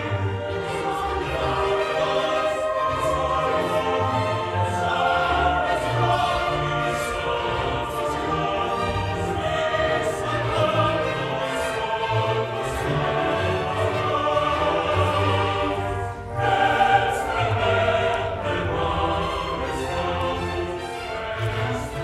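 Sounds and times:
choir singing: 0.0 - 22.0
symphony orchestra playing: 0.0 - 22.0.

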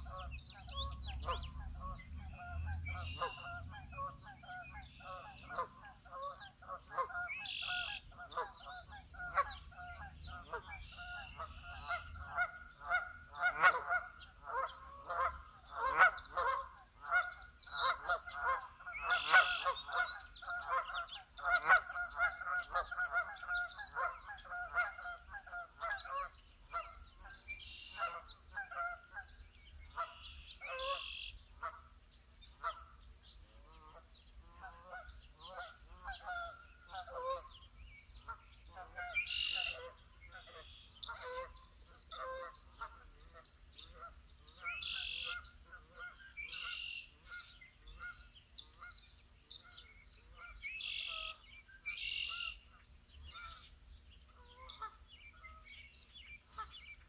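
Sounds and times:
higher bird calls: 0.0 - 31.9, 34.6 - 43.1, 43.8 - 49.0
waterfowl flock honking: 0.0 - 33.0, 33.6 - 37.6, 38.2 - 53.7.

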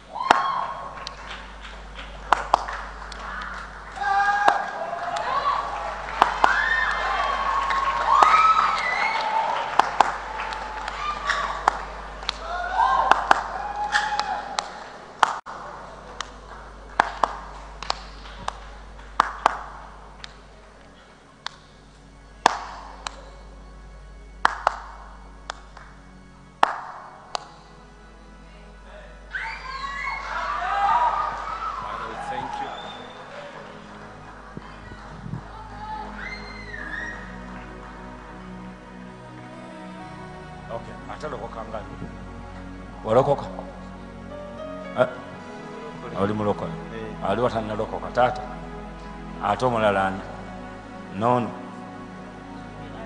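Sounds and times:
faint background music: 0.0 - 53.0
hand claps: 0.2 - 20.4, 21.4 - 21.7, 22.4 - 23.4, 24.4 - 26.0, 26.6 - 27.6.

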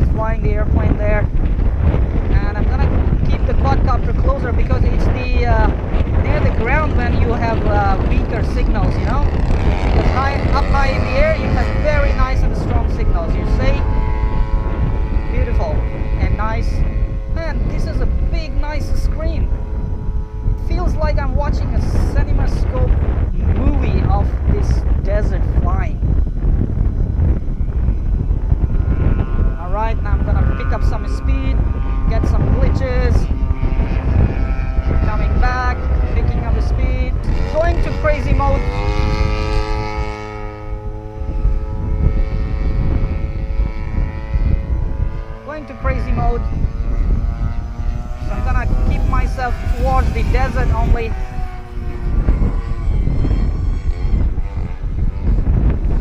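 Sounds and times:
quadcopter motors whining: 0.0 - 56.0
rush of wind: 0.0 - 56.0.

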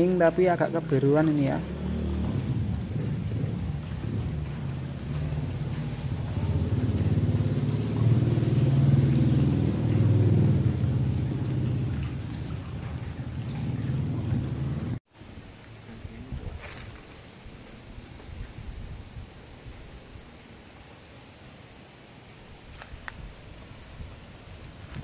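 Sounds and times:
water drops falling into pool: 0.0 - 15.0
deep rumble of moving water: 0.0 - 21.2.

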